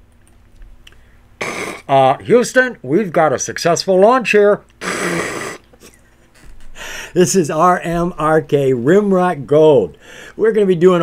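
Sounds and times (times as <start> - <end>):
sharp intake of breath: 1.0 - 1.9, 4.8 - 5.6, 6.8 - 7.2, 10.0 - 10.4
man's breathy laugh: 5.1 - 7.2.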